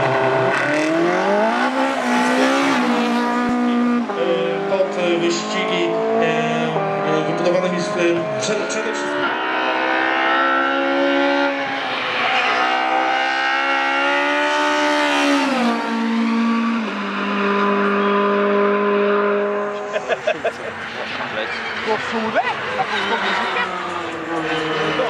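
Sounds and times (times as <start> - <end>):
race car engine at full throttle: 0.0 - 25.0.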